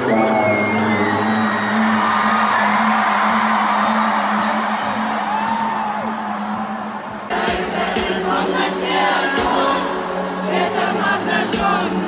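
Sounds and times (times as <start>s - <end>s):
crowd whooping and shouting: 0.0s - 7.3s
live concert music: 0.0s - 12.0s.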